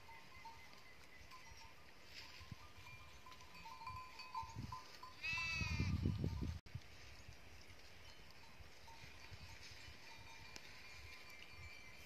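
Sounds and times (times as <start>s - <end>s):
faint livestock bells tinkling: 0.0s - 12.0s
wind rumble on microphone: 2.1s - 12.0s.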